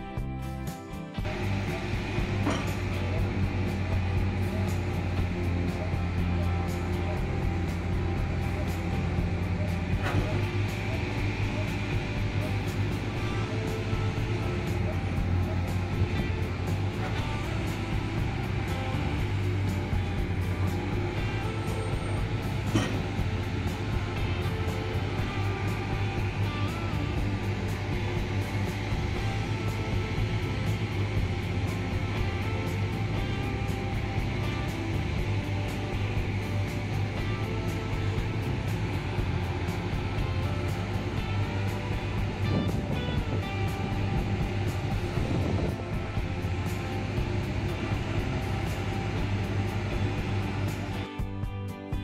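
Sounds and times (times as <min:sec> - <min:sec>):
background music: 0:00.0 - 0:52.0
construction machinery humming: 0:00.0 - 0:52.0
knocks and clanks: 0:02.0 - 0:03.0, 0:22.6 - 0:23.3.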